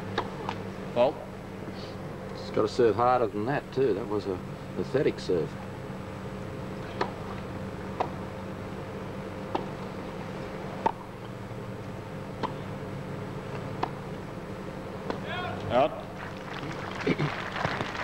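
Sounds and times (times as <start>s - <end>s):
steady hum: 0.0s - 18.0s
voices: 15.1s - 17.4s.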